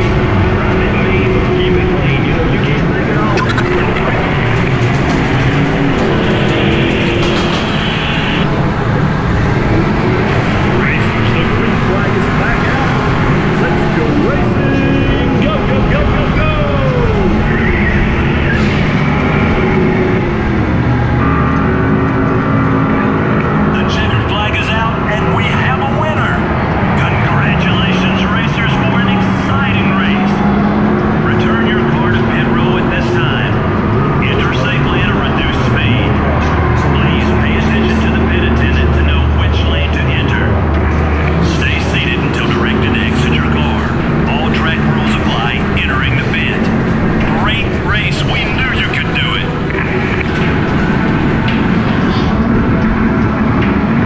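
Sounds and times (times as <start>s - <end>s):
go-kart motor hum: 0.0s - 54.0s
rolling and wind noise: 0.0s - 54.0s.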